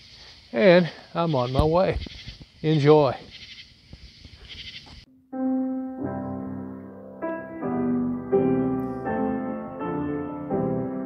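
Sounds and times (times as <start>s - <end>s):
man speaking: 0.6s - 2.0s, 2.6s - 3.2s.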